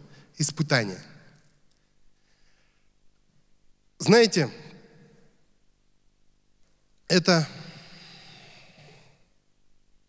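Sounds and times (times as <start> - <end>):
man breathing out into microphone: 7.6 - 9.2.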